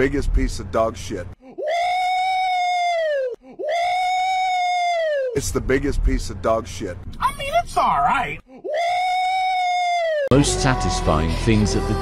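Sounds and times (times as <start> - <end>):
man screaming high-pitched: 1.6 - 5.4, 8.7 - 11.5.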